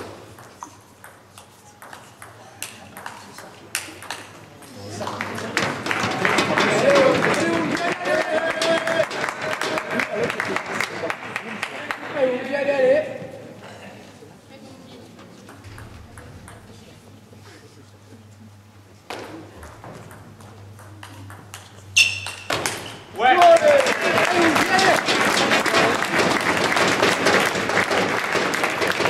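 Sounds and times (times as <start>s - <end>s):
crowd noise: 2.4s - 21.3s, 22.9s - 29.0s.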